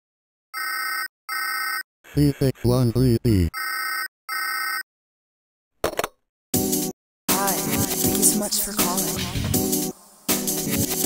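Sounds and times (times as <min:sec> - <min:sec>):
electronic telephone ring: 0:00.6 - 0:01.8, 0:03.6 - 0:04.8.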